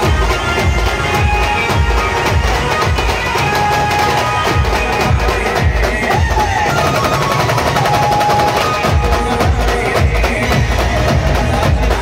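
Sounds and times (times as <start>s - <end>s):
band music over loudspeakers: 0.0s - 12.0s
fast dense drumming: 0.0s - 12.0s.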